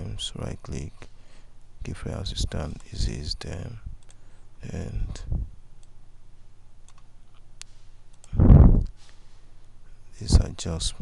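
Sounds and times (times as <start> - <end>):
low electrical hum: 0.0 - 11.0
computer mouse clicks: 6.8 - 9.0
burst of low rumbling: 8.4 - 8.9.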